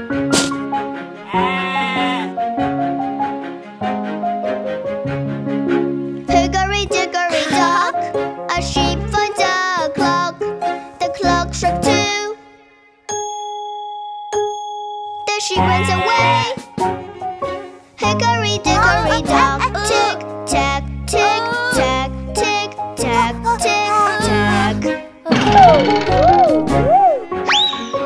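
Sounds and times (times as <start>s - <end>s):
bright children's music: 0.0s - 28.0s
cartoon sheep bleat: 1.2s - 2.4s, 15.6s - 16.6s.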